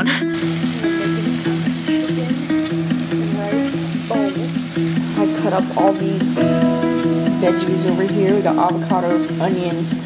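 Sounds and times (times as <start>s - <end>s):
background music: 0.0s - 10.0s
chicken sizzling in a pan: 0.3s - 10.0s.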